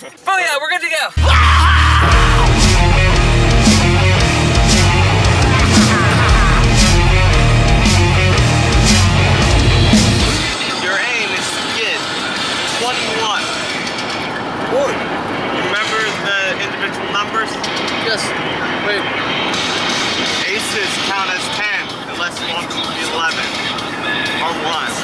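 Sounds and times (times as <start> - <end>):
voices: 0.0 - 9.5, 10.5 - 25.0
heavy rock music: 1.2 - 25.0.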